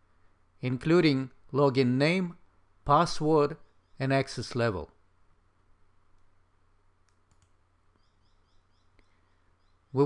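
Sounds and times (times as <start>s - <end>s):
faint computer mouse clicks: 7.0s - 7.6s.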